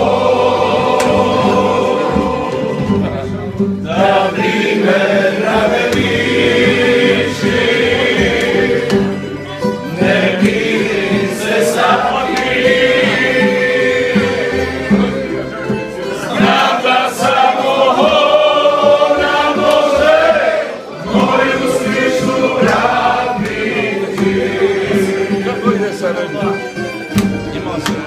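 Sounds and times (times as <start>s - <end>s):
men singing in chorus: 0.0s - 3.0s, 3.9s - 9.2s, 9.9s - 15.1s, 16.2s - 25.9s
strummed stringed instruments: 0.0s - 28.0s.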